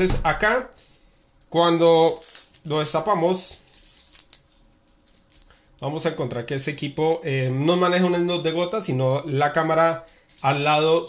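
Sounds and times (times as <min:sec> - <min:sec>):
plastic wrap crinkling: 0:00.8 - 0:05.9.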